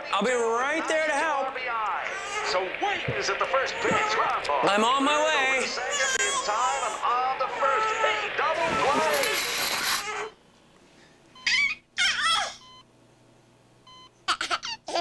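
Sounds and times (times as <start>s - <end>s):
baseball commentary: 0.0s - 9.4s
crowd cheering: 0.0s - 9.6s
short high-pitched cries: 8.8s - 10.4s.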